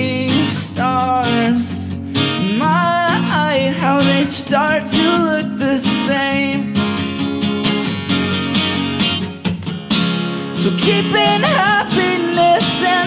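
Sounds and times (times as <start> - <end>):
man singing: 0.0 - 6.8, 10.5 - 13.0
acoustic guitar strumming: 0.0 - 13.0.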